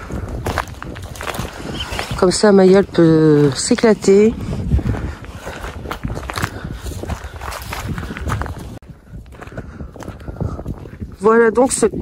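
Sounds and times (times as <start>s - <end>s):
footsteps on grass: 0.0s - 11.6s
wind buffeting microphone: 0.0s - 12.0s.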